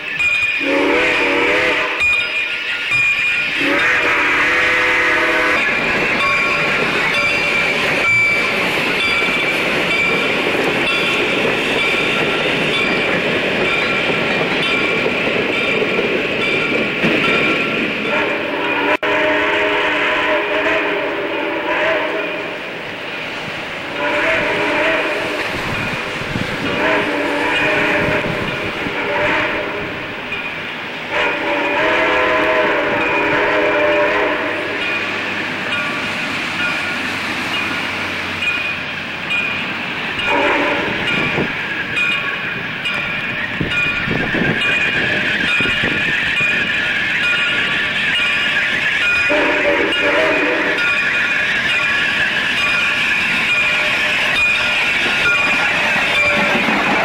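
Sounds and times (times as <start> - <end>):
steam locomotive chime whistle: 0.0 - 15.8, 16.4 - 22.7, 23.9 - 57.0
train running noise: 0.0 - 57.0.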